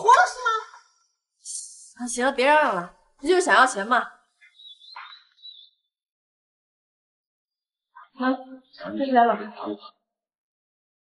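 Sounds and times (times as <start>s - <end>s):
faint bird chirping: 3.3s - 6.0s.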